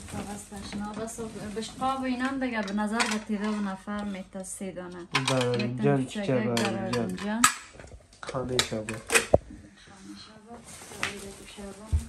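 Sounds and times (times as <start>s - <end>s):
kitchenware clinking: 2.2s - 3.9s, 5.1s - 9.4s.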